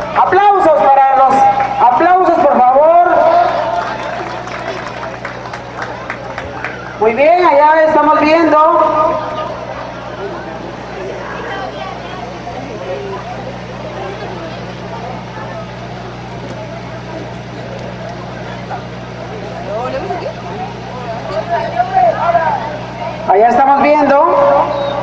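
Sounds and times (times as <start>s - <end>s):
indistinct chatter: 0.0s - 25.0s
steady low hum: 0.0s - 25.0s.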